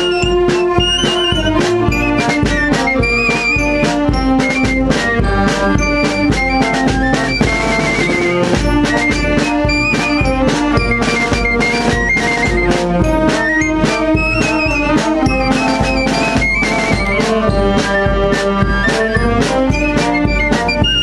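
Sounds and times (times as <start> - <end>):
steady drum beat: 0.0 - 21.0
wind band playing a march: 0.0 - 21.0.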